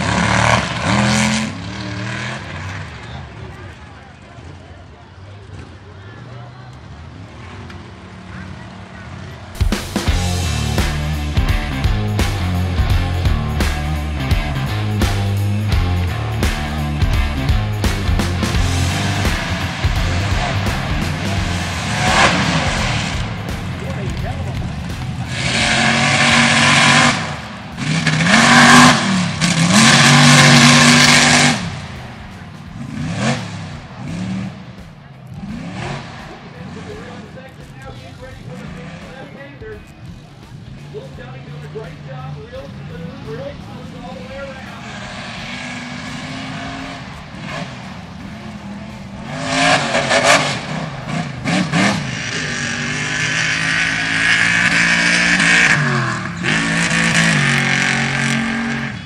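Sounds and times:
buggy engines at full throttle: 0.0s - 59.0s.

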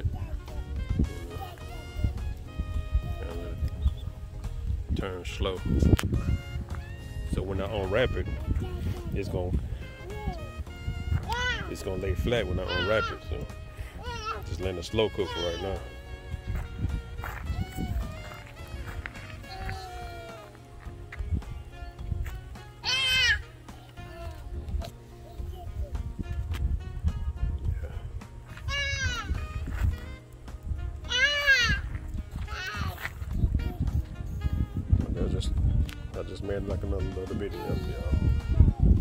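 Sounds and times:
high-pitched voices calling out: 10.0s - 11.7s, 12.3s - 16.2s, 17.2s - 20.7s, 22.8s - 26.0s, 28.5s - 30.1s, 31.0s - 34.0s.

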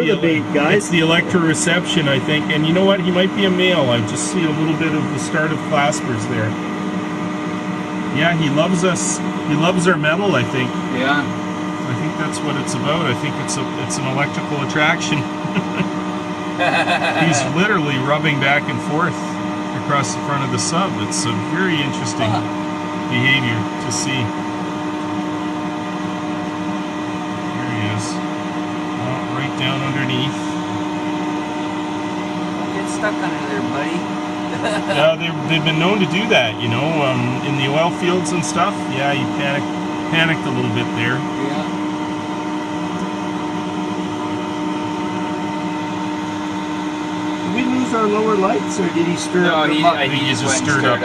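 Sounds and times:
person speaking: 0.0s - 6.6s, 8.1s - 15.9s, 16.6s - 22.5s, 23.1s - 24.3s, 27.6s - 28.2s, 29.0s - 30.5s, 32.7s - 41.7s, 47.5s - 51.0s
constant mid-pitched tone: 0.0s - 51.0s
machinery hum: 0.0s - 51.0s.

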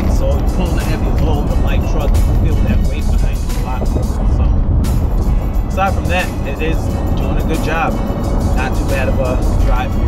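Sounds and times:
background music: 0.0s - 10.0s
engine and road noise rumble: 0.0s - 10.0s.

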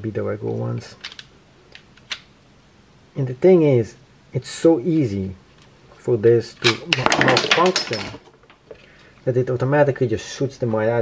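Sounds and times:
plastic clicks of loading magazine: 1.0s - 2.3s.

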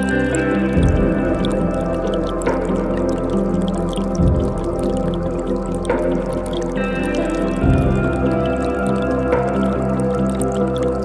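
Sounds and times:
ambient synth music: 0.0s - 11.0s
creek trickling: 0.0s - 11.0s
water drips: 0.0s - 11.0s.

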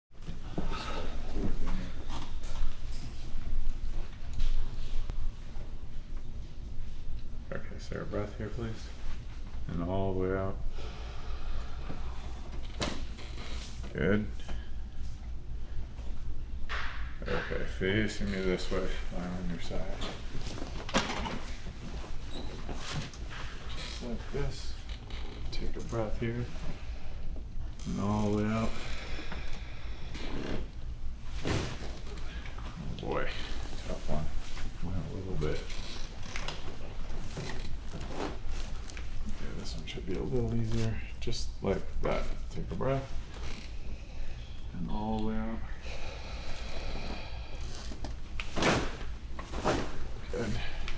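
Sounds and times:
person exhaling: 45.8s - 47.7s.

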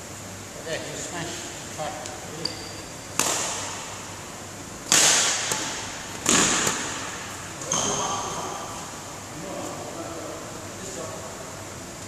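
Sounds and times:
shuttlecocks struck with rackets: 2.0s - 4.1s, 4.8s - 8.4s.

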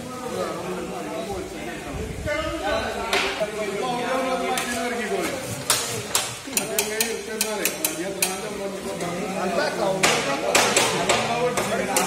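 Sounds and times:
men chatting: 0.0s - 12.0s
metal cooking utensils clinking: 5.6s - 8.6s.

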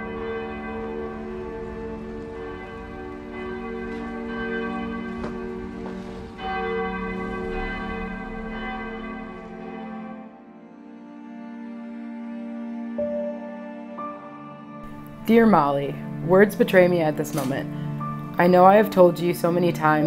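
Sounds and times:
church bell ringing: 0.0s - 10.6s, 14.8s - 20.0s.

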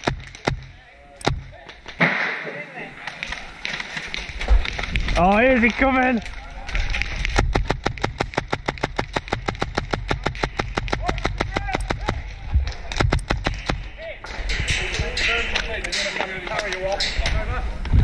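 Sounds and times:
airsoft rifle firing shots: 7.3s - 12.3s.

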